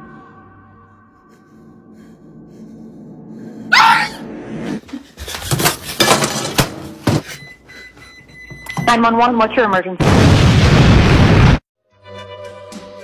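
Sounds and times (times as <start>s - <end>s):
loud short scream: 3.7s - 4.2s.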